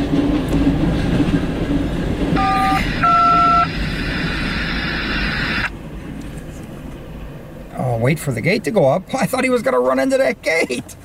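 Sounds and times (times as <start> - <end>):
freight train wheels rumbling: 0.0 - 11.0
train horn two-note blasts: 2.4 - 3.7.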